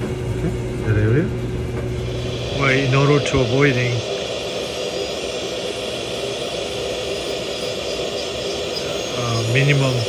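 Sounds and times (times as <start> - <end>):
dental handpiece grinding whine: 1.6 - 10.0.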